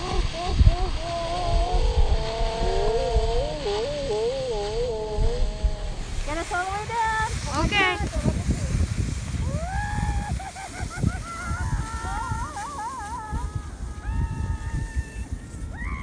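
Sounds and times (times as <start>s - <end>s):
woman laughing and squealing: 0.0s - 2.4s, 6.4s - 16.0s
low rumbling noise: 0.0s - 16.0s.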